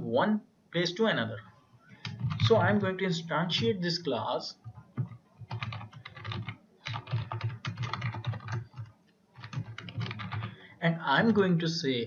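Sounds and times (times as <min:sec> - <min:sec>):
computer keyboard typing: 0:02.0 - 0:03.8, 0:04.5 - 0:10.6.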